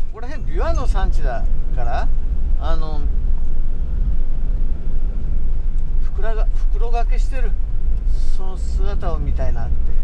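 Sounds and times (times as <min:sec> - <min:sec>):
camper van engine rumble: 0:00.0 - 0:10.0
road noise: 0:00.0 - 0:10.0.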